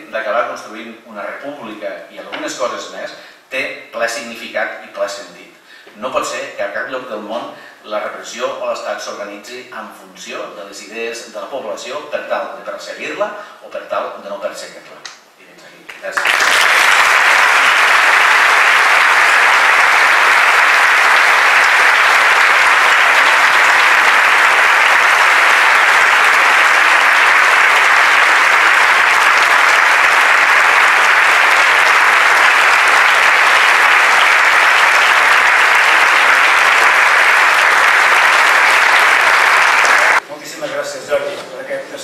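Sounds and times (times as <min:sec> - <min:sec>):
audience applauding: 0:16.0 - 0:40.2.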